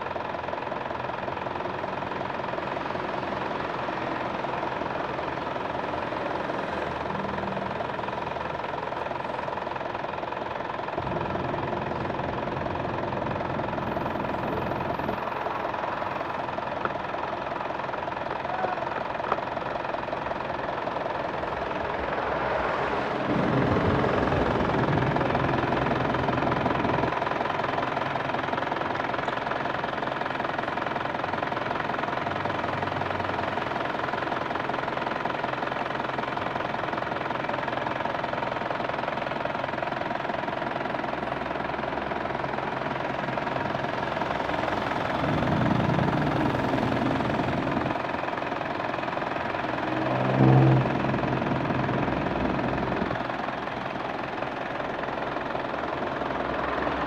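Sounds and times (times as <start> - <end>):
diesel engine idling: 0.0 - 57.0
brief louder hum: 49.6 - 52.9.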